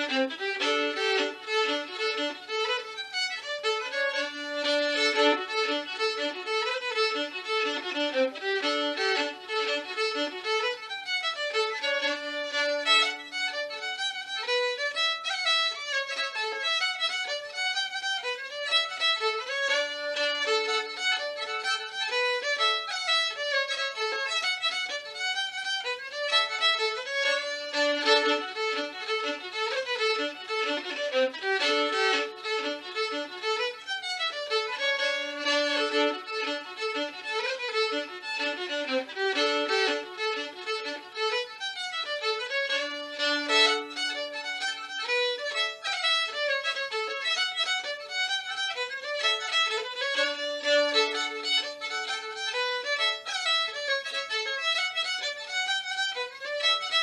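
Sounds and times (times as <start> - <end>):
solo fiddle playing a jig: 0.0 - 57.0.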